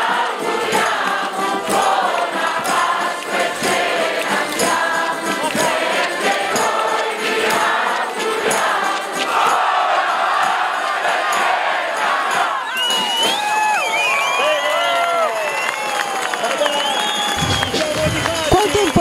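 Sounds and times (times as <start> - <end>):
accordion ensemble playing: 0.0 - 13.0
crowd singing: 0.0 - 13.3
percussion and bells beat: 0.0 - 13.8, 16.0 - 19.0
crowd shouting and cheering: 0.0 - 19.0.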